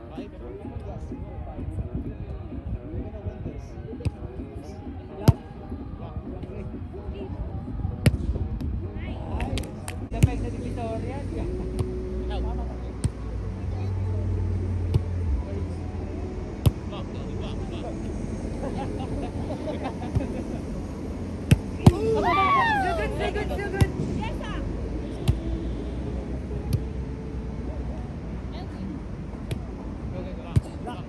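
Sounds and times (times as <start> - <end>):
faint players' voices: 0.0 - 31.0
low rumble: 0.7 - 30.0.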